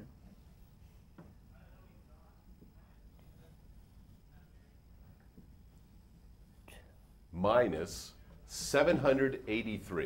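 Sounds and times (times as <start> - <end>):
faint breathy hiss: 0.0 - 10.0
faint low hum: 0.0 - 10.0.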